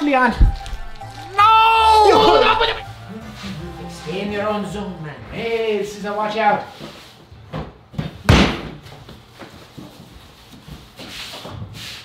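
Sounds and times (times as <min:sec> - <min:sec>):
dough slammed on table: 0:08.3 - 0:08.8.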